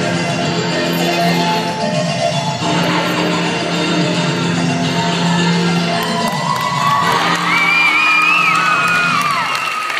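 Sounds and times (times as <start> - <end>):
dance music: 0.0 - 9.9
crowd cheering and whooping: 5.5 - 9.9.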